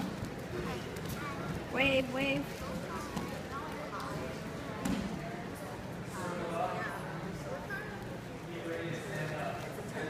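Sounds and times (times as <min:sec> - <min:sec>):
faint children's voices: 0:00.0 - 0:01.8, 0:02.5 - 0:08.9.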